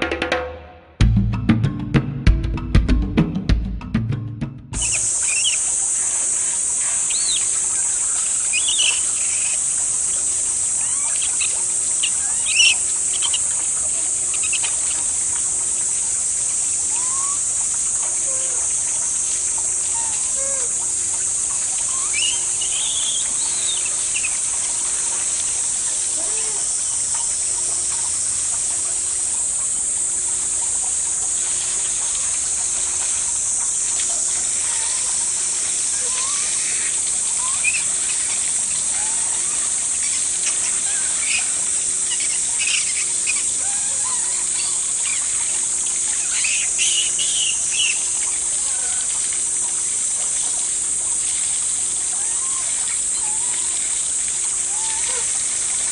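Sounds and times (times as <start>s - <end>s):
steady high hiss: 0.9s - 55.9s
baby monkey high-pitched calls: 8.4s - 9.6s, 10.8s - 13.6s.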